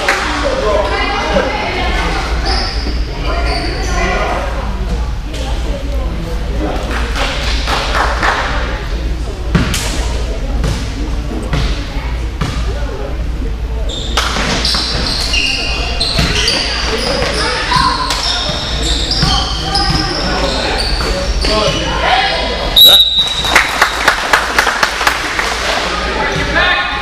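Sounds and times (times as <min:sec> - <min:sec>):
sneakers squeaking: 0:00.9 - 0:04.5, 0:10.6 - 0:13.2, 0:13.8 - 0:23.6
basketball bouncing on gym floor: 0:16.0 - 0:16.6, 0:17.2 - 0:20.2.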